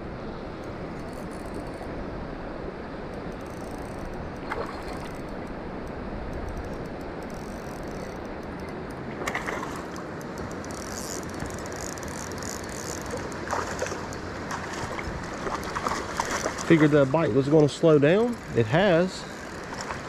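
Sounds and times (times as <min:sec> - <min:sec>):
creek water rushing: 0:09.0 - 0:20.0.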